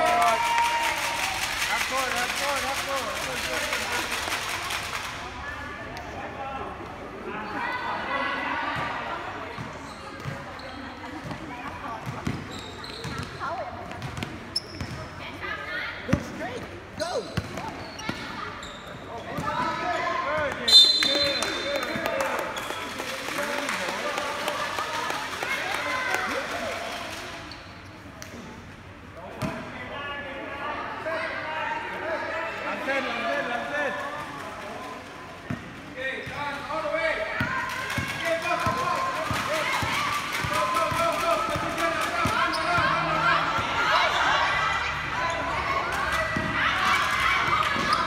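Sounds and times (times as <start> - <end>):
players and spectators calling out: 5.4 - 11.1, 36.0 - 48.0
basketball bouncing on court: 11.2 - 15.0.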